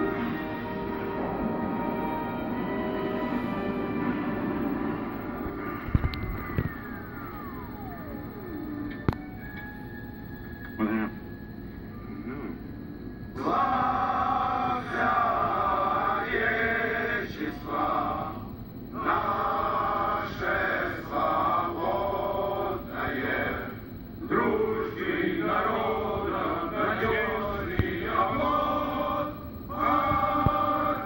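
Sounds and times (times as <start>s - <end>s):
film music on television speaker: 0.0s - 31.0s
tone falling in pitch: 5.5s - 12.0s
film dialogue voices: 10.7s - 11.3s.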